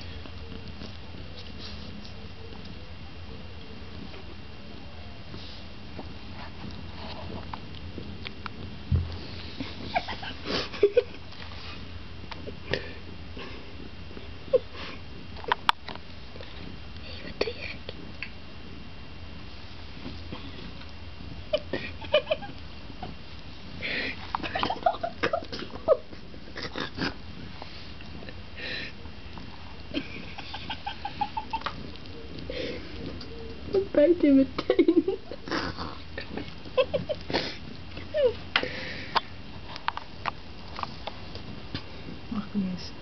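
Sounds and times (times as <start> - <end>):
kittens scuffling: 0.0 - 4.4, 5.2 - 18.2, 19.4 - 42.8
claws scratching on woven mat: 0.2 - 2.8.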